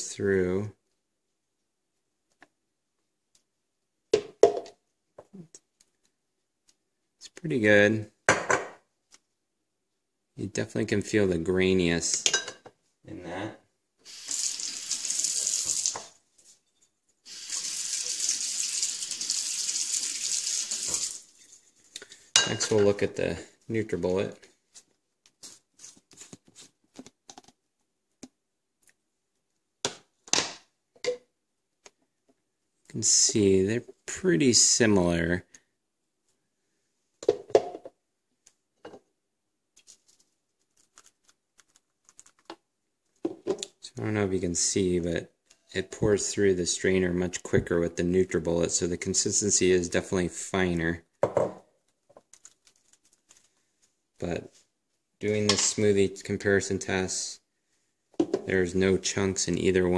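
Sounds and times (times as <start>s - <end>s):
water running from a tap: 14.1s - 16.1s, 17.3s - 21.3s.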